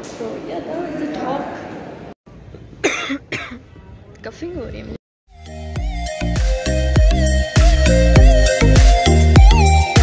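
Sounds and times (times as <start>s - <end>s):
woman coughing: 2.8s - 3.6s.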